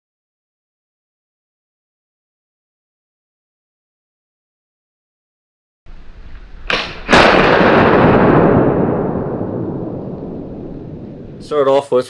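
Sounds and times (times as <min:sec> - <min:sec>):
loud rifle shot echoing: 0:06.2 - 0:11.5.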